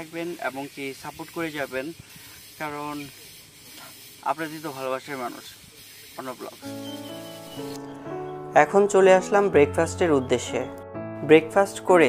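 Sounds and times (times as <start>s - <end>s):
steady hiss: 0.0s - 7.9s.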